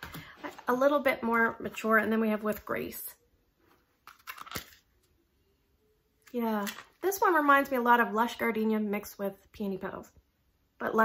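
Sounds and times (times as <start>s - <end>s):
plastic packaging crackling: 4.0s - 4.9s.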